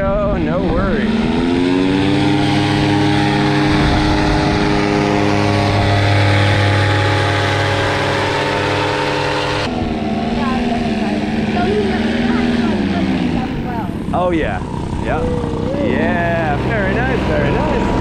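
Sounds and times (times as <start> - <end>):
paramotor engine droning: 0.0 - 18.0.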